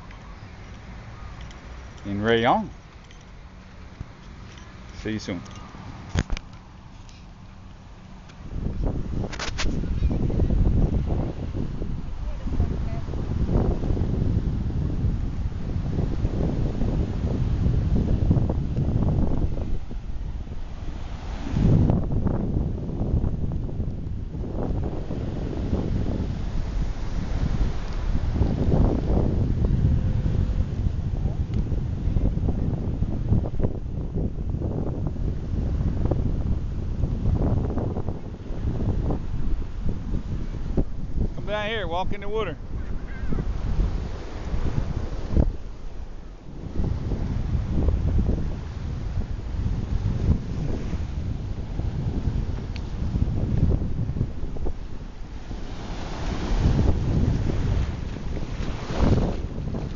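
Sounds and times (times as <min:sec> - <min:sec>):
wind buffeting microphone: 0:00.0 - 0:59.9
waves washing on beach: 0:08.0 - 0:59.9.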